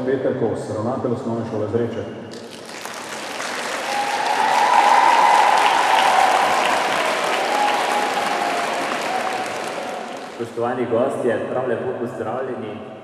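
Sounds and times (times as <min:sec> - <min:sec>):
large audience clapping: 0:02.3 - 0:10.6.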